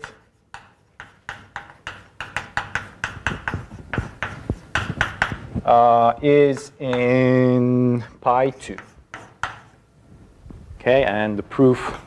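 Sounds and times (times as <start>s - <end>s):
chalk writing on blackboard: 0.0s - 7.4s, 8.3s - 9.8s.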